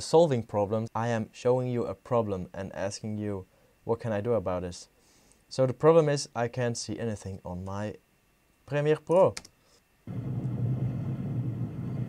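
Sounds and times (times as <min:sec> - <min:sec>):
steady rumble with low hum: 0:10.0 - 0:12.0.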